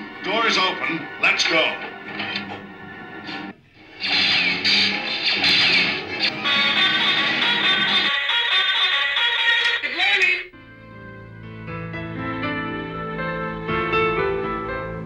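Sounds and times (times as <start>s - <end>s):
quieter slow music: 0.0s - 3.7s, 10.5s - 15.0s
loud busy music: 0.0s - 9.9s
voices: 9.4s - 10.5s.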